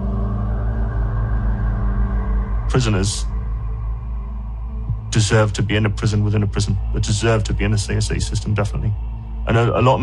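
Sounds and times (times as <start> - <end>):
low rumbling ambient drone: 0.0 - 10.0.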